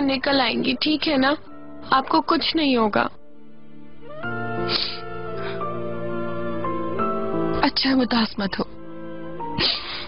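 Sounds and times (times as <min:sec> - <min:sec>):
slow sad background music: 0:00.0 - 0:10.0.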